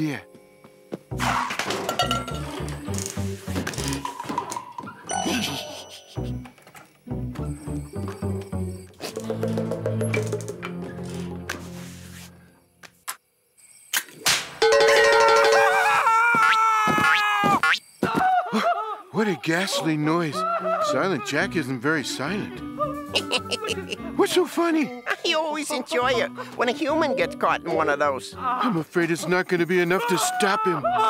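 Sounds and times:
cartoon background music: 0:01.1 - 0:11.9, 0:14.6 - 0:16.1, 0:20.2 - 0:31.0
man yelling in pain: 0:29.9 - 0:31.0.

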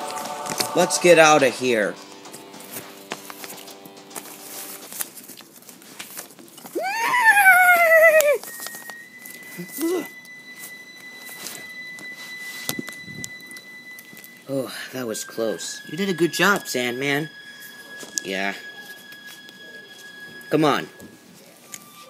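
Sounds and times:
held chord of steady tones: 0:00.0 - 0:04.7, 0:08.4 - 0:22.0
paper rustling on carpet: 0:02.7 - 0:06.8
wavering cry: 0:06.8 - 0:08.6
thin steady high tone: 0:06.8 - 0:22.0.

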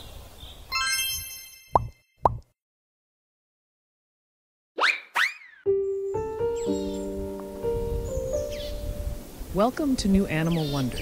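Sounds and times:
bright chime: 0:00.7 - 0:02.0
quick pops dropping in pitch: 0:01.8 - 0:02.5
faint outdoor ambience: 0:05.7 - 0:11.0.

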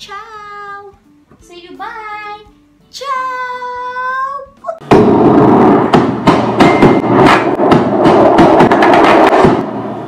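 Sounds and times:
dense noise with sharp hits: 0:04.9 - 0:10.0.

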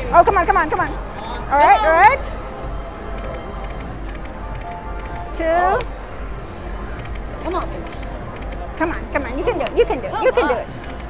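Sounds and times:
casino crowd noise: 0:00.0 - 0:11.0
slot machine electronic music: 0:01.6 - 0:11.0.

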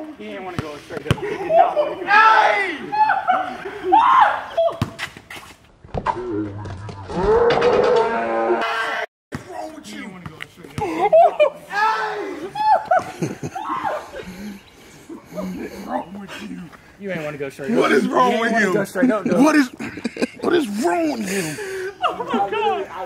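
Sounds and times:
young men shouting: 0:01.4 - 0:04.8, 0:11.1 - 0:14.4, 0:15.3 - 0:19.8, 0:20.4 - 0:23.0
long drawn-out yell: 0:01.5 - 0:04.8, 0:11.6 - 0:13.0, 0:13.6 - 0:14.3.

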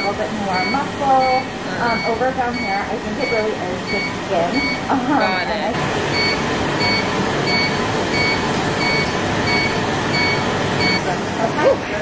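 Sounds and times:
machine beeping: 0:00.0 - 0:12.0
rushing machine noise: 0:00.0 - 0:12.0.

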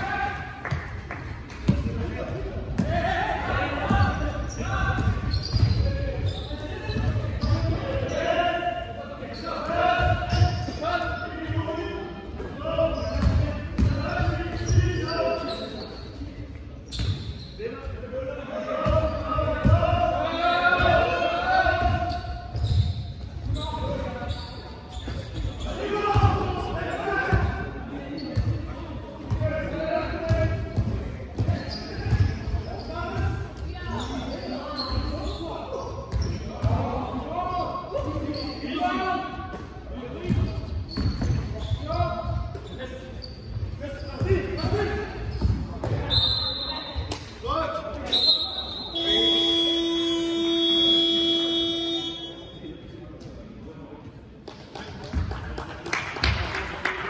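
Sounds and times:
players calling out: 0:47.8 - 0:52.7
short high whistle blasts: 0:48.1 - 0:52.6.

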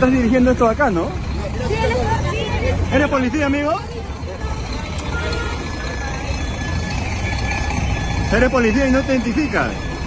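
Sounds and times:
motor traffic rumble: 0:00.0 - 0:10.0.

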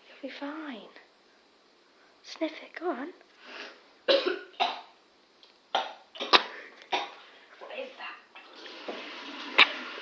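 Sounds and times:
woman coughing: 0:04.1 - 0:04.9, 0:05.8 - 0:07.1.

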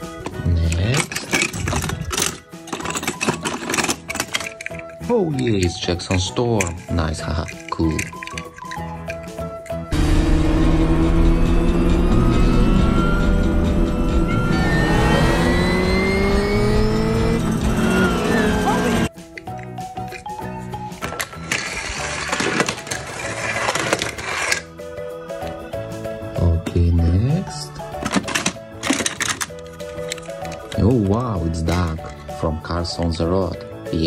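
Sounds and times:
film music: 0:00.0 - 0:34.0
race car engines revving: 0:10.0 - 0:19.1.

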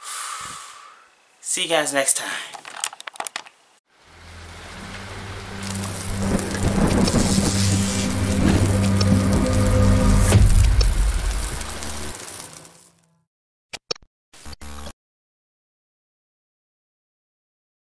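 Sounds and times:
rain: 0:03.9 - 0:13.1
low droning tone: 0:04.0 - 0:12.1
thunder: 0:04.8 - 0:12.2.

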